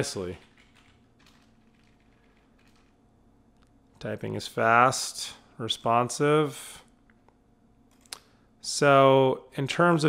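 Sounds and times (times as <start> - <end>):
typing on computer keyboard: 0.3 - 2.9.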